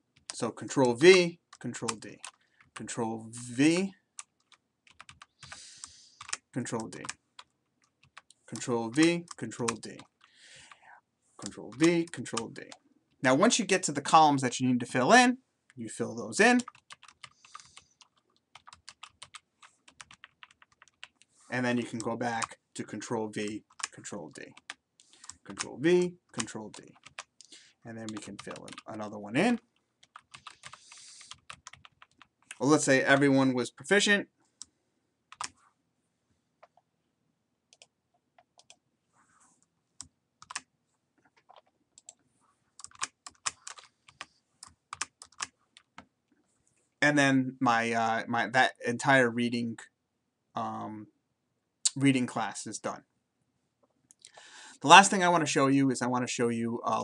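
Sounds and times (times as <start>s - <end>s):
typing on keyboard: 1.9s - 2.8s, 4.2s - 5.6s, 6.2s - 10.3s, 16.6s - 21.3s, 23.4s - 25.7s, 26.3s - 29.0s, 30.0s - 32.6s, 35.3s - 35.6s, 37.7s - 38.8s, 40.0s - 40.7s, 41.3s - 42.2s, 42.8s - 46.0s.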